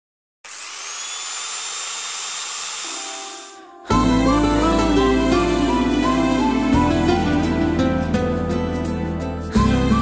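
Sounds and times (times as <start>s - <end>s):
electric motor whine: 0.4s - 3.8s
motor hiss: 0.5s - 3.6s
guitar music: 3.6s - 10.0s.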